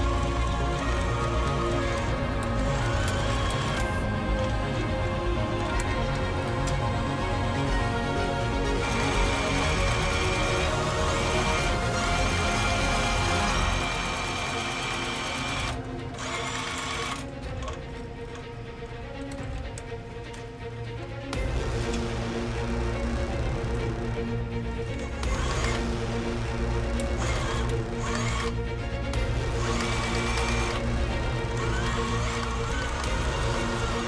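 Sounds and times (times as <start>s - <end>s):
background music: 0.0s - 34.0s
sewing machine stitching: 8.8s - 17.8s, 25.2s - 25.9s, 27.2s - 28.6s, 29.5s - 30.8s, 31.5s - 34.0s.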